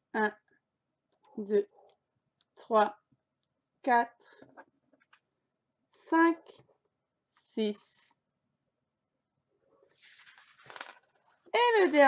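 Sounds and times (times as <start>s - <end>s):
plastic tokens rustling: 10.0s - 11.2s.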